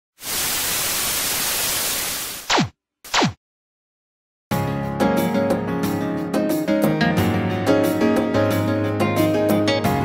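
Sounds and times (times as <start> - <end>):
television static hiss: 0.2 - 2.4.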